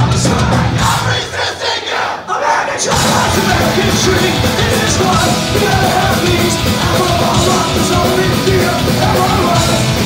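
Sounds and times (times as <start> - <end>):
punk band playing live: 0.0 - 1.4, 2.8 - 10.0
crowd shouting along: 0.0 - 10.0.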